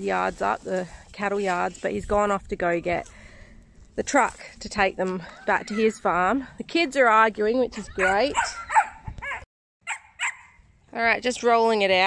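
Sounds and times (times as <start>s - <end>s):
dog yipping: 7.9s - 10.6s.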